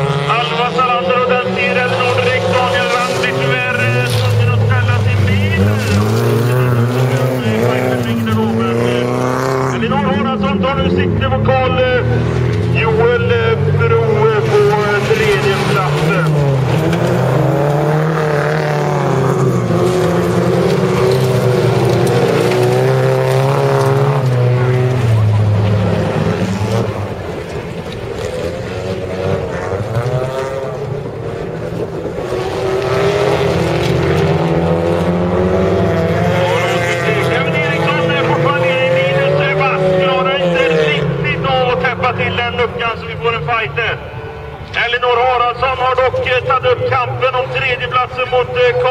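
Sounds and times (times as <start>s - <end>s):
race car engines revving: 0.0s - 48.9s.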